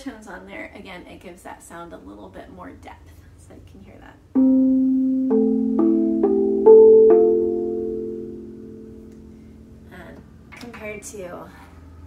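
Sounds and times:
steel tongue drum notes ringing: 0:04.4 - 0:09.9.

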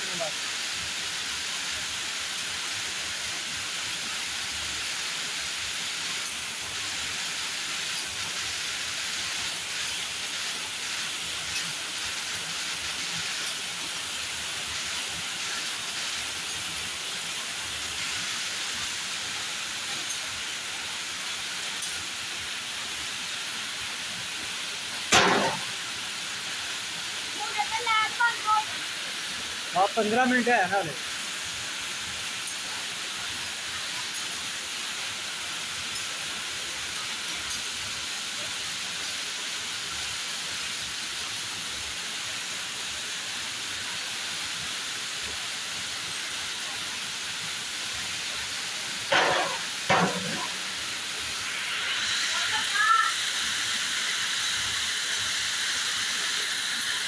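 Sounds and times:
winding machine hissing: 0:48.0 - 0:57.0.

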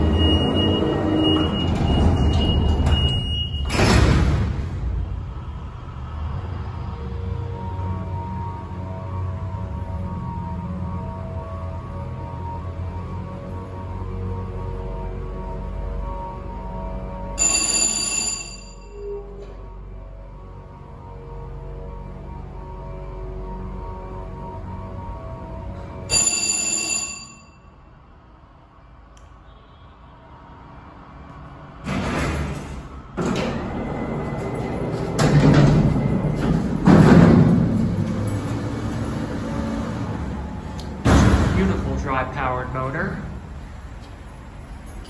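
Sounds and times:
elevator chime: 0:00.0 - 0:03.9, 0:17.2 - 0:19.7, 0:26.0 - 0:27.8
freight doors rattling and banging: 0:00.0 - 0:05.3, 0:31.8 - 0:42.6.

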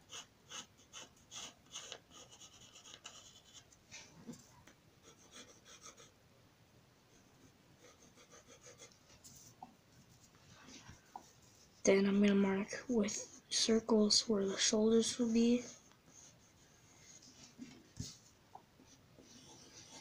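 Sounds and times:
pencil scratching on paper: 0:00.0 - 0:03.7, 0:05.0 - 0:06.2, 0:07.4 - 0:09.5, 0:14.8 - 0:18.2, 0:18.9 - 0:20.0.

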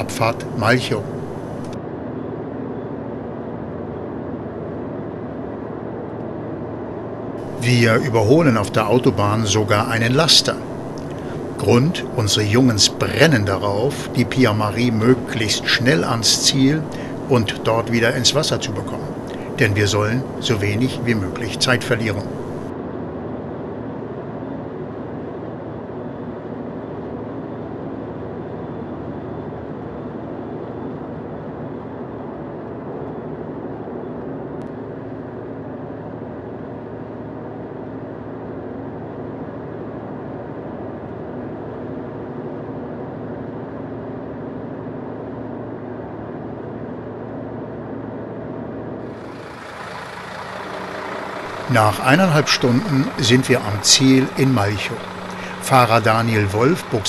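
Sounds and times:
car engine and road noise: 0:00.0 - 0:01.8, 0:07.4 - 0:22.7, 0:48.8 - 0:57.0.

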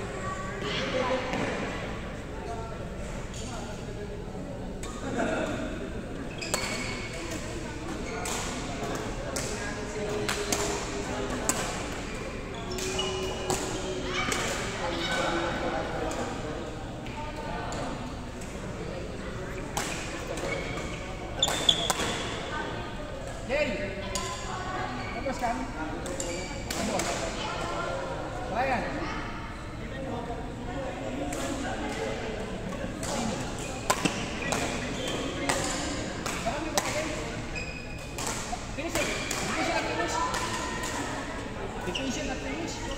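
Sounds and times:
racket hitting shuttlecock: 0:21.5 - 0:22.3, 0:33.0 - 0:37.0.

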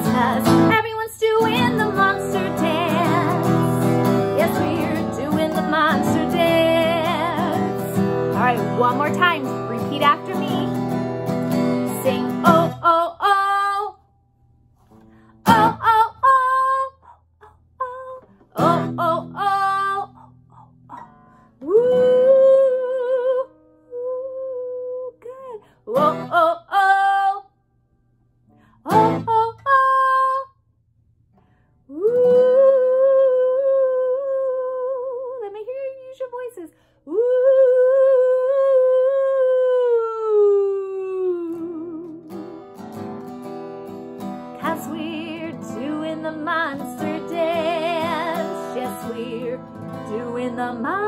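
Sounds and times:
woman singing long notes: 0:00.0 - 0:10.7, 0:15.5 - 0:27.4, 0:31.9 - 0:42.3, 0:44.6 - 0:51.0
acoustic guitar strums: 0:01.4 - 0:12.8, 0:42.3 - 0:44.9.

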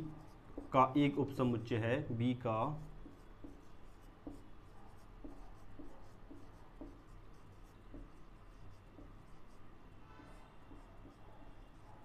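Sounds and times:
marker pen writing on whiteboard: 0:00.0 - 0:12.0.

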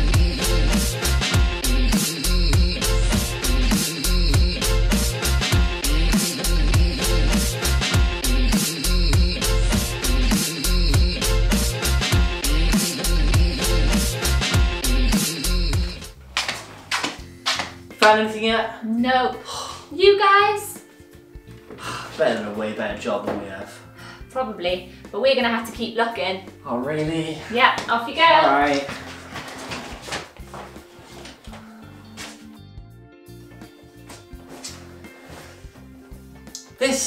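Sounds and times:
soft background music: 0:15.8 - 0:37.0.

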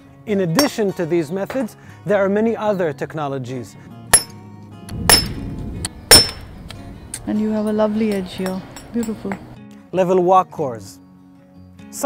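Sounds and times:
hammerstone striking flint: 0:04.1 - 0:04.4, 0:05.1 - 0:05.4, 0:06.1 - 0:07.2.

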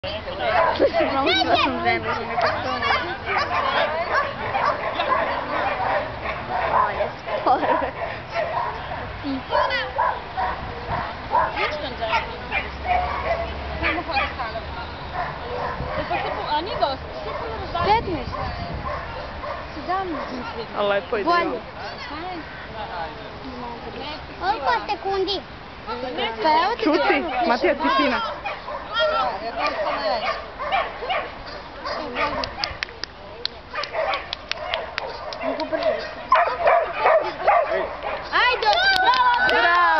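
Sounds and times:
people's voices: 0:00.0 - 0:39.9
dog barking and yipping: 0:00.4 - 0:14.6, 0:26.9 - 0:32.8, 0:33.7 - 0:38.5
dog yipping and barking: 0:33.8 - 0:37.8.

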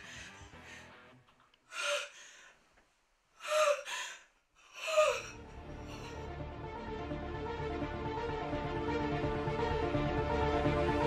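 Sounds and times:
woman gasping sobs: 0:00.0 - 0:01.0, 0:01.7 - 0:02.6, 0:03.4 - 0:06.4.

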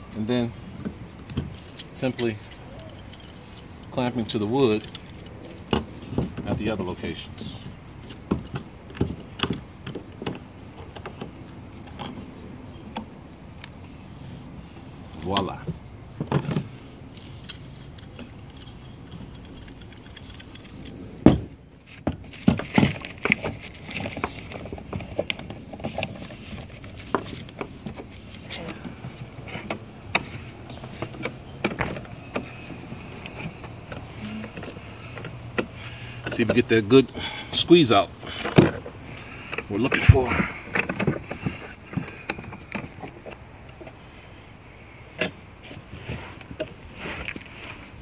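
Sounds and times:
metal clamps clinking and knocking: 0:16.3 - 0:21.5.

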